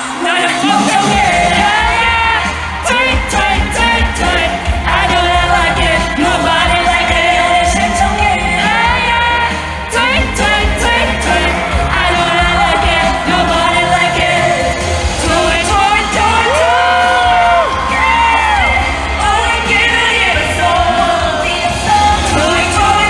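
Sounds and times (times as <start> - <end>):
woman singing: 0.0 - 23.0
bass-heavy backing track: 0.4 - 23.0.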